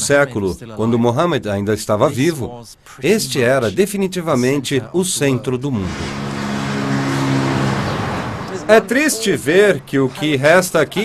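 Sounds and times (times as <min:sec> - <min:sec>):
vehicle engine hum: 0:05.7 - 0:11.0
rushing noise: 0:05.8 - 0:09.3.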